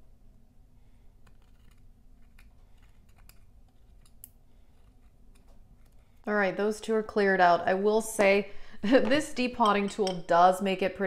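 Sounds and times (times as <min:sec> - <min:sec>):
metal tool scraping powder: 0:01.2 - 0:06.3.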